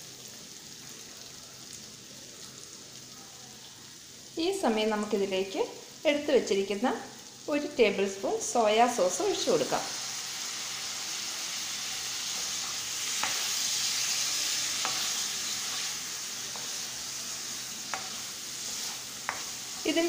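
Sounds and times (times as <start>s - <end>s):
cheese frying in a pan: 0.0s - 20.0s.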